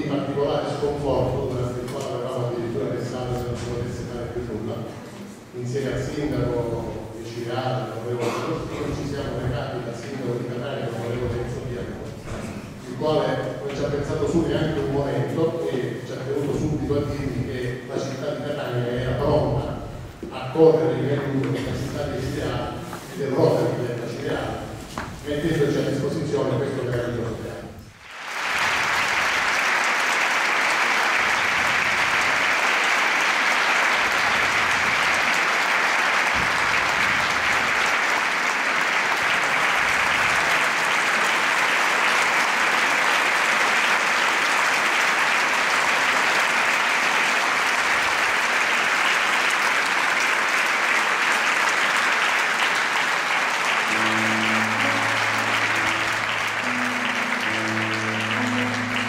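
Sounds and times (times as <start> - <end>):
audience applauding: 27.9 - 59.0
grand piano low notes: 53.9 - 59.0.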